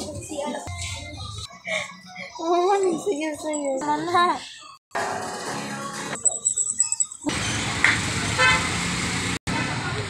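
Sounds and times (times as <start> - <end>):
street traffic: 2.7 - 10.0
vehicle horn toot: 8.4 - 8.8.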